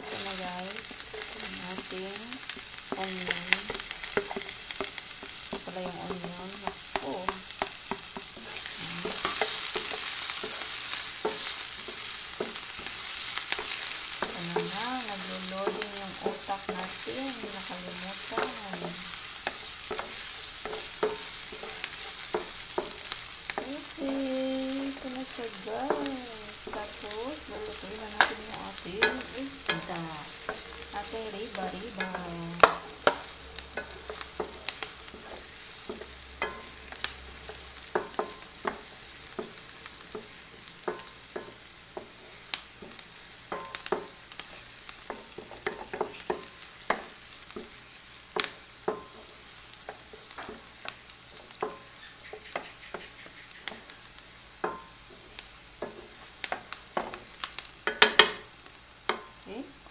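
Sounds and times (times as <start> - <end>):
spatula knocking and scraping pan: 0.0 - 58.5
onion sizzling in oil: 0.0 - 59.9.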